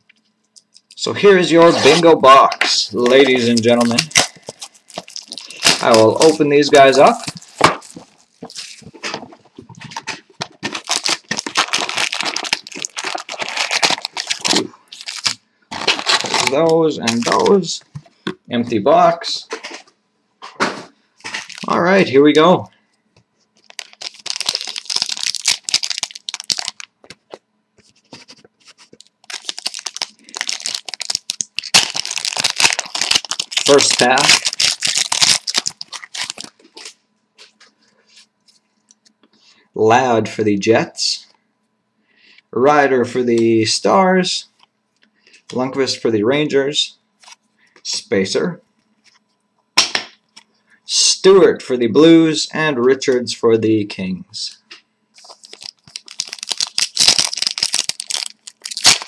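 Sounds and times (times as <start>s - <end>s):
foil wrapper crinkling and tearing: 1.7s - 9.2s, 9.9s - 17.6s, 21.3s - 21.9s, 23.6s - 27.4s, 28.0s - 37.0s, 55.2s - 59.0s.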